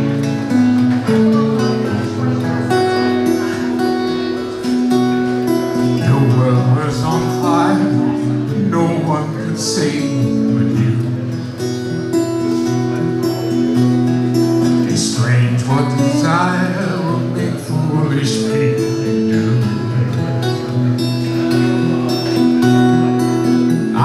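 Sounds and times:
acoustic guitar strumming: 0:00.0 - 0:24.0
man singing: 0:05.8 - 0:11.4, 0:14.6 - 0:20.5, 0:23.7 - 0:24.0.

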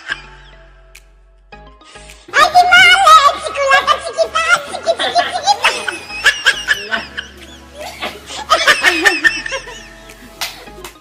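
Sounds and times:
people laughing loudly: 0:04.5 - 0:11.0.

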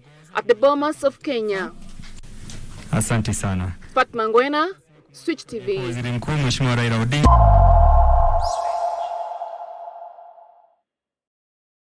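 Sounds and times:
deep electronic hit: 0:07.3 - 0:10.4
high swish: 0:07.3 - 0:10.4
ringing tone: 0:07.3 - 0:10.5.

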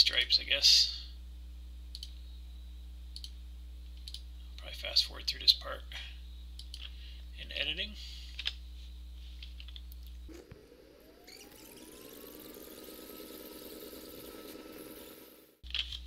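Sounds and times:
low room hum: 0:00.0 - 0:16.0
rising whine and whirring: 0:08.7 - 0:15.6.

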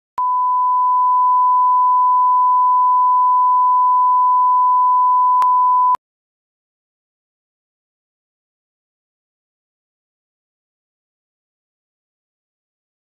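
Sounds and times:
high-pitched sine-wave beep: 0:00.2 - 0:06.0.

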